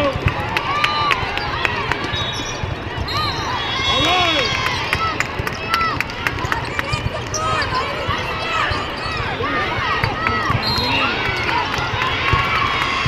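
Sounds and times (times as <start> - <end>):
murmur of spectators: 0.0 - 13.0
volleyballs struck and bouncing: 9.7 - 13.0.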